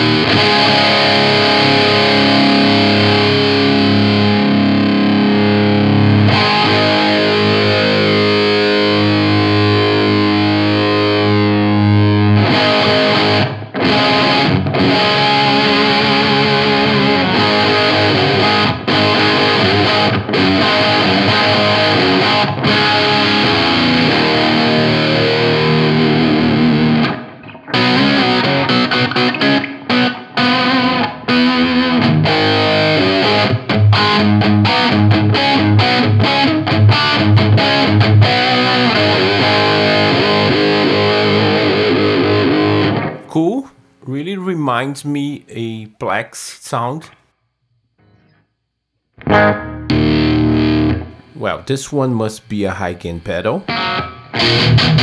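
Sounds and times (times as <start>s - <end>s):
distorted electric guitar: 0.0s - 44.0s, 49.2s - 51.6s, 52.3s - 55.0s.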